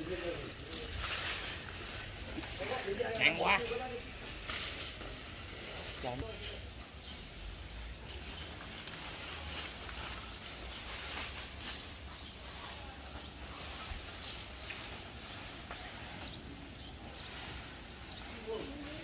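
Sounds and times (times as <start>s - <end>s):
faint outdoor background noise: 0.0s - 19.0s.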